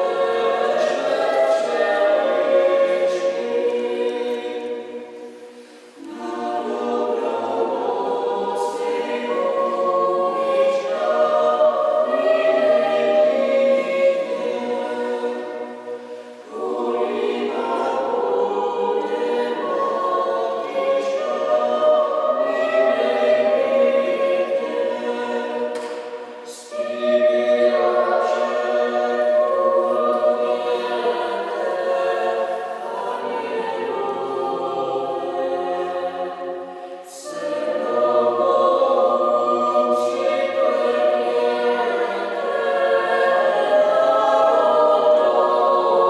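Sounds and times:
choir singing unaccompanied: 0:00.0 - 0:46.0.

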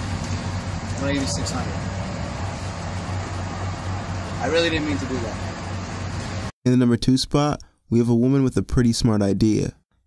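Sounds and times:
outdoor background hiss: 0:00.0 - 0:08.4.

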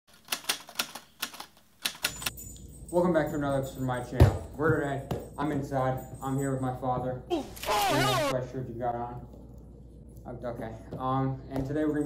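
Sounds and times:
keystroke clicks: 0:00.2 - 0:02.3.

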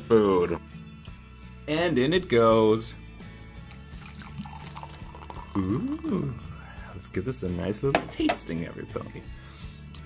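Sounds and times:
background music: 0:00.0 - 0:10.0
cider fizzing in a glass: 0:03.6 - 0:06.9.

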